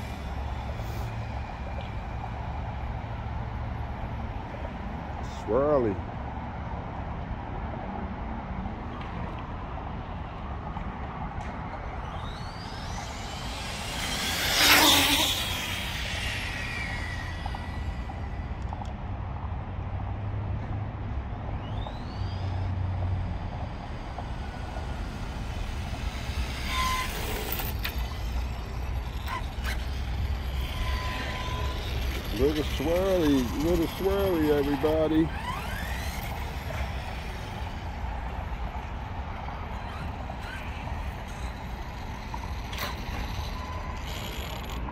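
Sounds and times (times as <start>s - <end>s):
electric rc car motor whining: 0.0s - 4.0s, 11.5s - 18.9s, 21.5s - 44.9s.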